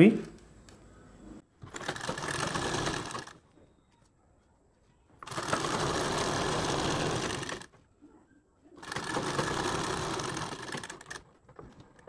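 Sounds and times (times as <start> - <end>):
sewing machine running: 1.6 - 3.4, 5.2 - 7.8, 8.8 - 11.9.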